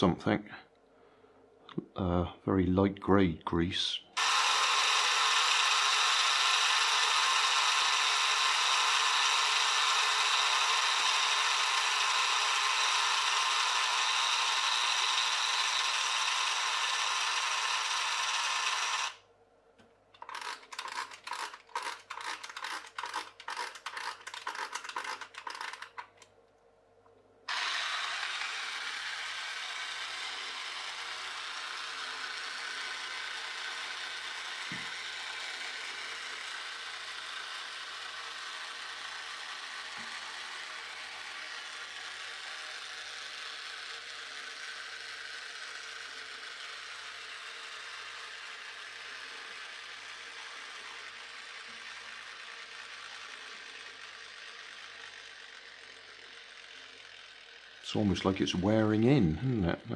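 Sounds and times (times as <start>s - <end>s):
clockwork motor gears whirring: 4.1s - 19.2s, 20.2s - 26.3s, 27.5s - 59.2s
key winding spring clicks: 20.2s - 26.3s.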